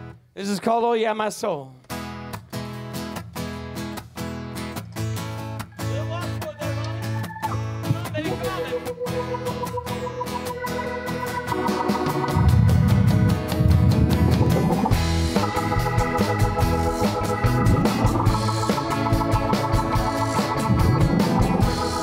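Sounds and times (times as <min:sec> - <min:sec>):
live rock band playing: 0:02.1 - 0:22.0
held organ notes: 0:05.8 - 0:22.0.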